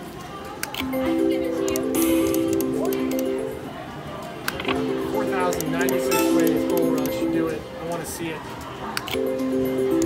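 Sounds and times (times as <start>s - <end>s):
slot machine electronic melody: 0.8s - 8.2s, 9.1s - 10.0s.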